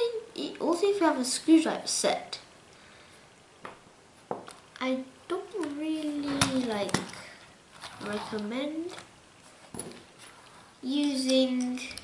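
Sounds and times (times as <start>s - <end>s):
person speaking: 4.7s - 9.2s, 10.8s - 12.0s.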